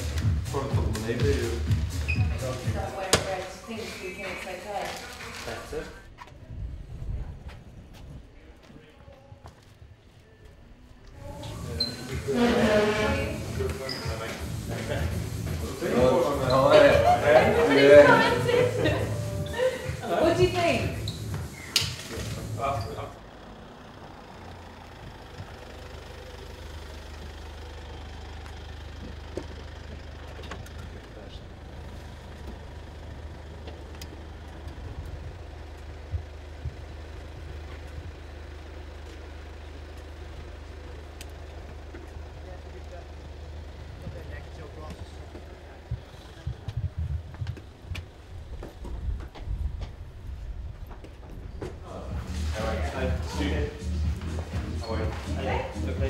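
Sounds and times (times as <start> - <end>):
van engine idling: 0.0 - 56.0
uneven low rumbling: 5.8 - 56.0.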